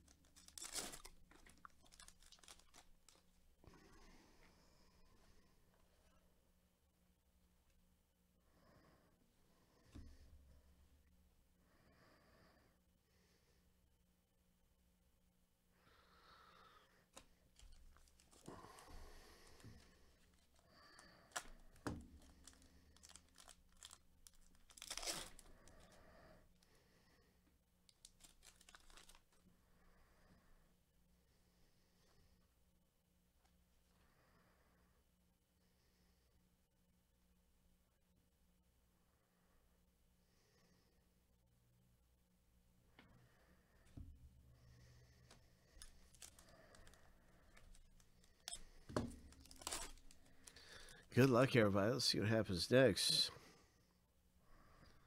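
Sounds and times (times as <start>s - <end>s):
wrapper ripping: 0.0s - 3.3s, 22.2s - 25.8s, 27.9s - 29.3s, 45.8s - 47.0s, 49.1s - 51.0s
plastic wrapper crinkling: 0.0s - 3.4s, 17.6s - 18.9s, 20.2s - 25.8s, 27.9s - 29.4s, 45.8s - 51.1s.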